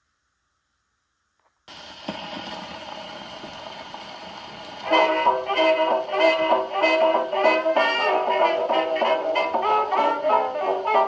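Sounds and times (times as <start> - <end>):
record surface hiss and crackle: 0.0 - 11.0.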